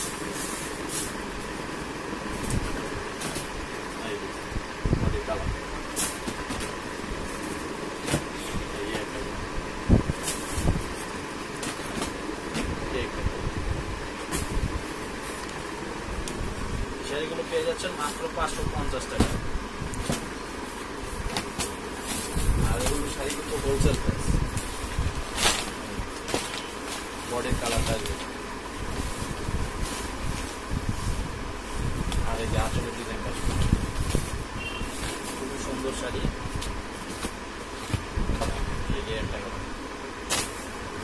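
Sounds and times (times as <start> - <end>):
steady low rumble: 0.0 - 41.0.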